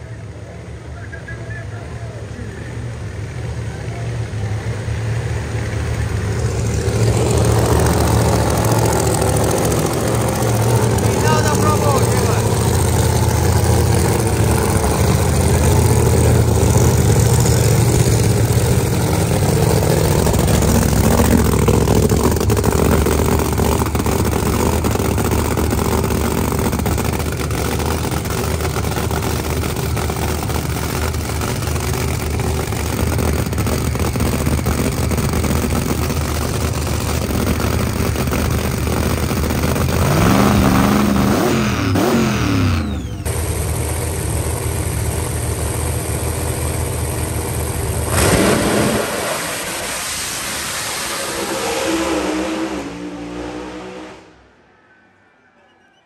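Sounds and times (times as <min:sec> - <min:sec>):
car engine idling loudly: 0:00.0 - 0:48.6.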